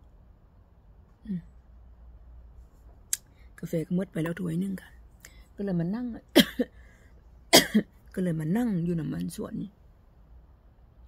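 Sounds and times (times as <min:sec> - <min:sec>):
woman coughing: 0:06.3 - 0:06.7, 0:07.5 - 0:07.9.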